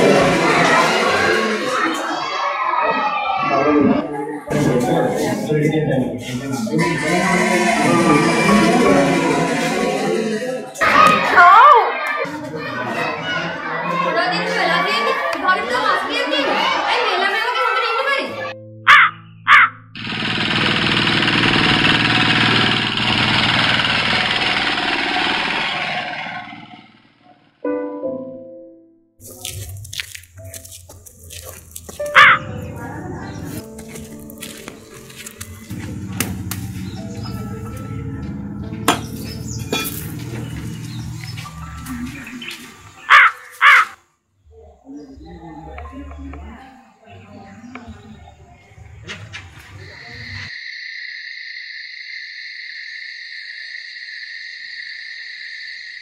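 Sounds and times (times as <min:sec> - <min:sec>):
crow cawing: 0:18.9 - 0:19.8, 0:32.2 - 0:32.4, 0:41.6 - 0:44.0
background music with low notes: 0:30.4 - 0:42.2.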